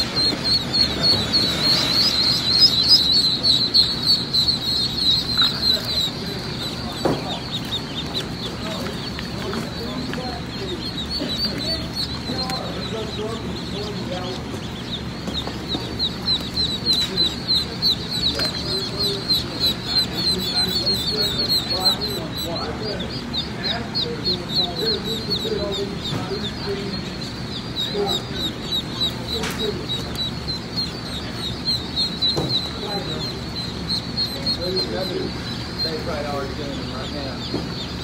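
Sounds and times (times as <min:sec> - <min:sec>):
ducklings peeping: 0:00.0 - 0:38.0
steady low hum: 0:00.0 - 0:38.0.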